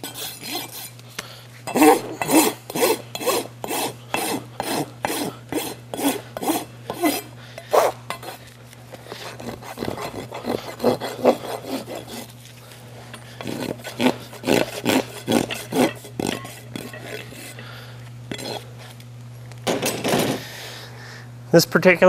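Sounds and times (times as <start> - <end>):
rasp scraping hoof: 9.0 - 17.6, 18.3 - 18.7.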